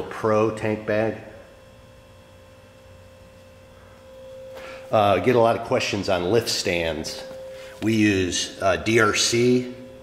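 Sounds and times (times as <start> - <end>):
faint high hum: 0.0 - 10.0
low hum: 0.0 - 10.0.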